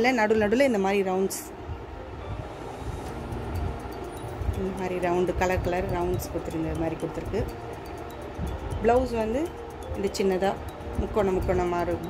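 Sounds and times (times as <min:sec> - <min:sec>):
low background rumble: 0:01.5 - 0:12.0.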